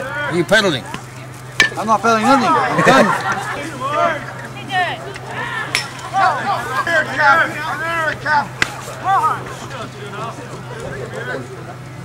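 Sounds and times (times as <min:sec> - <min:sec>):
steady electrical hum: 0:00.0 - 0:12.0
people shouting: 0:01.6 - 0:10.3.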